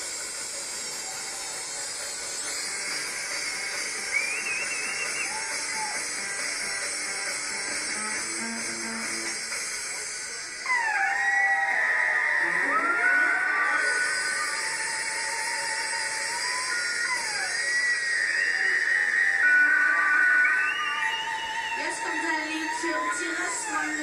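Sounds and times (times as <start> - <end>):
steady hiss: 0.0 - 10.7
high wavering sliding tones: 10.6 - 24.0.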